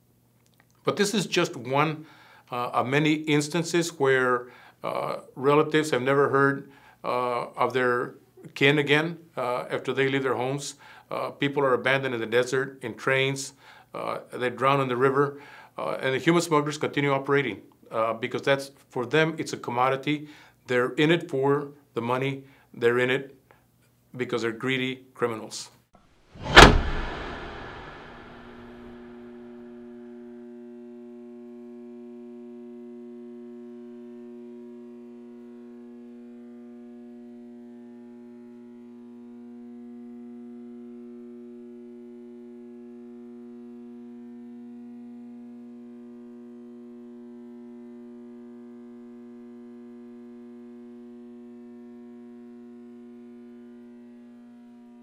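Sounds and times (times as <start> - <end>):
loud hit tail: 26.4 - 29.9.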